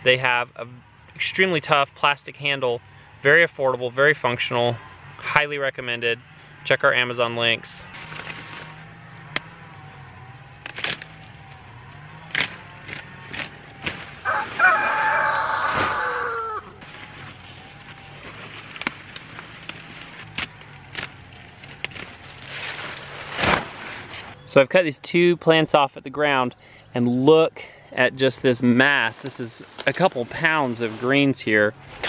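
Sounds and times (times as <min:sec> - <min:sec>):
knife cutting through stalks: 0:08.0 - 0:09.5, 0:10.6 - 0:14.6, 0:17.0 - 0:24.3
rooster crowing: 0:11.5 - 0:16.8.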